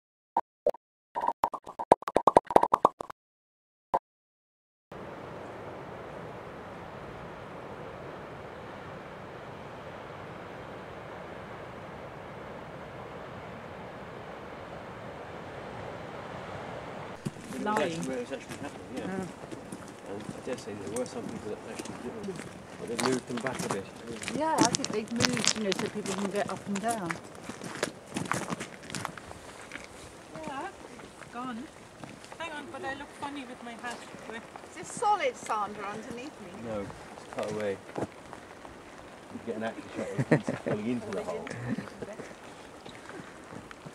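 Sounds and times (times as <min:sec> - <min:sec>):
footsteps on gravel: 0:17.2 - 0:36.1, 0:41.0 - 0:43.9.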